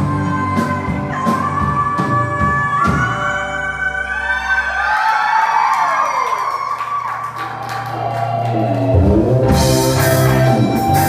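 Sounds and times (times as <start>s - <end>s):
live rock band: 0.0s - 5.7s, 7.7s - 11.0s.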